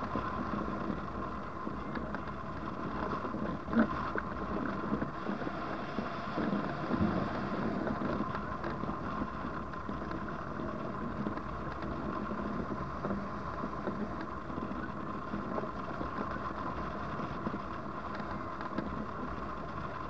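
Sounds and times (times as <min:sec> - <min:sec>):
wind rushing past camera: 0:04.7 - 0:14.8.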